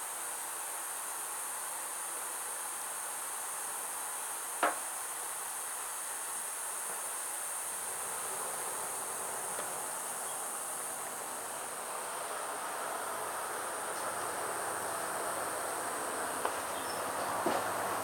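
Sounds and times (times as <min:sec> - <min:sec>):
insects chorus: 0:00.4 - 0:18.0.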